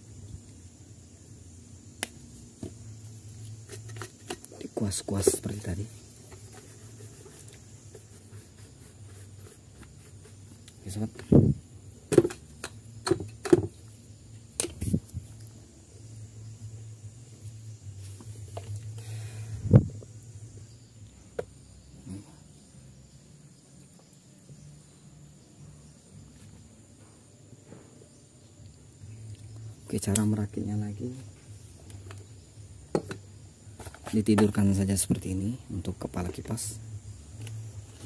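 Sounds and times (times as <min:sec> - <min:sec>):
plastic fan parts knocking: 0:12.1 - 0:13.7, 0:33.8 - 0:34.6.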